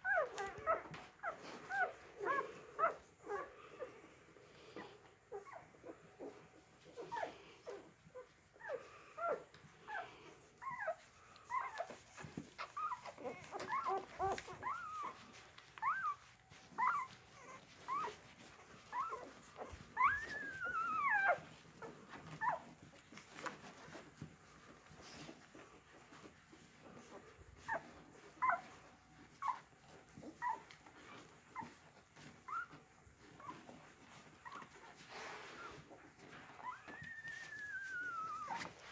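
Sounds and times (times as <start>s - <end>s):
dog whimpering: 0.0s - 4.0s, 4.8s - 38.9s.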